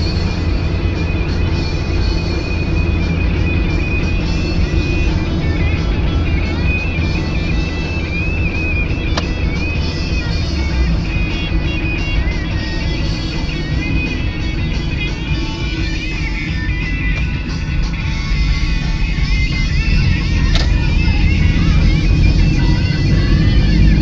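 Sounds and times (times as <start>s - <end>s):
car road and engine rumble: 0.0s - 24.0s
music playing in car: 0.0s - 24.0s
sharp click: 20.5s - 20.8s.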